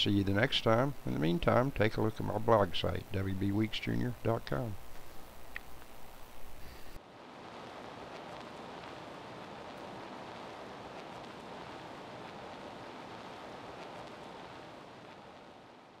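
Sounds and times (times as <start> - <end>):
faint rushing hiss: 0.0 - 16.0.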